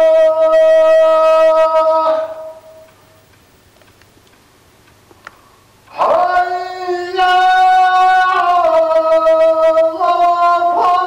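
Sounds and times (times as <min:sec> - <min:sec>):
person chanting long note: 0:00.0 - 0:02.9
faint clicks: 0:02.8 - 0:06.0.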